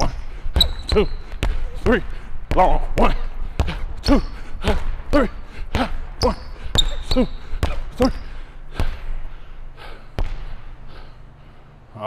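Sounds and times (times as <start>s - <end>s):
basketball bouncing on hardwood floor: 0.0s - 9.0s, 10.2s - 10.5s.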